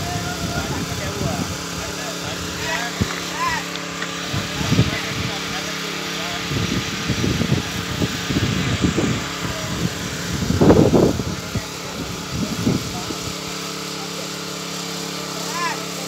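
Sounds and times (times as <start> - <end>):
low engine hum: 0.0 - 13.9
indistinct voices talking: 0.0 - 16.0.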